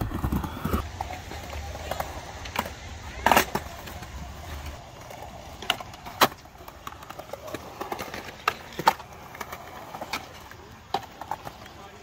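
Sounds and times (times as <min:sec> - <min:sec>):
skateboard clacks: 0:00.0 - 0:12.0
skateboard wheels rolling: 0:00.0 - 0:12.0.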